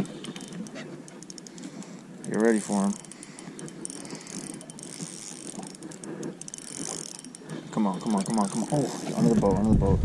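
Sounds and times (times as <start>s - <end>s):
fishing reel ticking and whirring: 0.0s - 9.9s.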